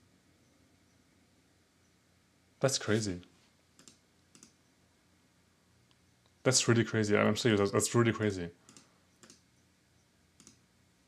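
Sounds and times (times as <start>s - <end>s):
computer mouse clicks: 3.7s - 4.6s, 8.6s - 9.6s, 10.3s - 10.6s.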